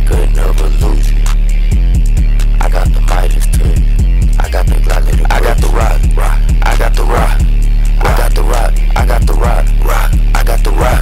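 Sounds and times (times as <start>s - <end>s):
hi-hat ticks: 0.0s - 11.0s
sliding deep bass hits: 1.2s - 11.0s.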